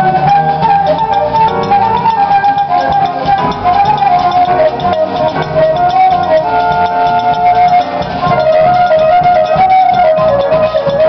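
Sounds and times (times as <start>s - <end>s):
flute long held notes: 0.0s - 11.0s
jazz band playing: 0.0s - 11.0s.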